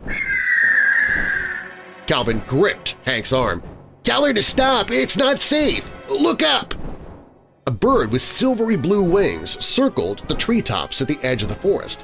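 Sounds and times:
large bird long high cry: 0.0s - 1.7s
soft background music: 1.1s - 12.0s.

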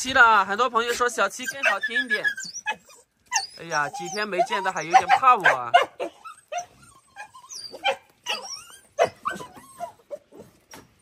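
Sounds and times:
dogs whining and yipping: 0.8s - 11.0s.

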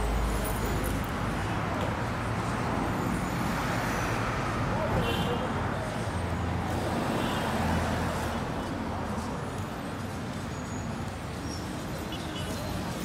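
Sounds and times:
traffic noise: 0.0s - 13.0s.

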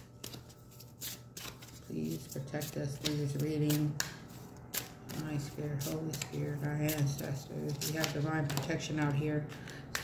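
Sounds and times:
cards rustling and flicking: 0.0s - 9.0s.

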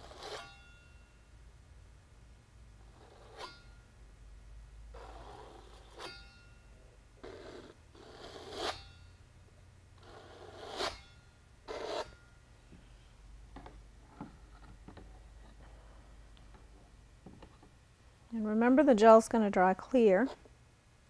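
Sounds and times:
palette knife scraping canvas: 0.0s - 0.5s, 7.3s - 8.8s, 10.0s - 11.0s, 11.7s - 12.2s.

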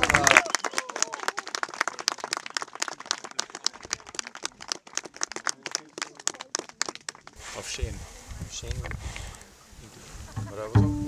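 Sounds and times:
audience applauding: 0.0s - 7.4s.

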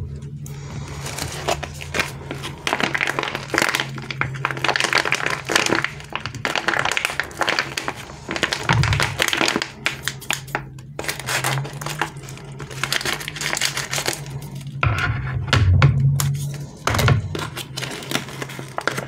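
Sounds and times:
plastic packaging crinkling: 0.5s - 14.8s, 16.2s - 19.0s.

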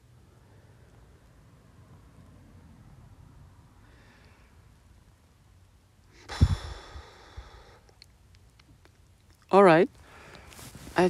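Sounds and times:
person sighing: 6.2s - 7.9s.

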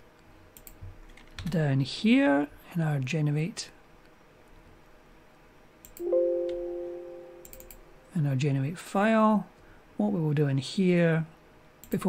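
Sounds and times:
soft clicks: 0.6s - 1.3s, 7.4s - 7.8s
computer alert chime: 6.0s - 8.0s.

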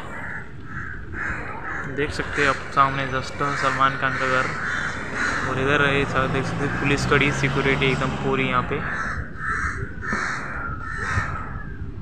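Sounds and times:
crows cawing: 0.0s - 12.0s
street traffic hum: 0.0s - 12.0s.

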